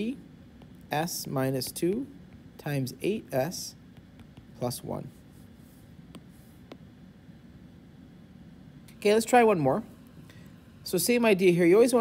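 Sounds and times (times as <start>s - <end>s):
stylus strokes on tablet screen: 0.0s - 7.7s.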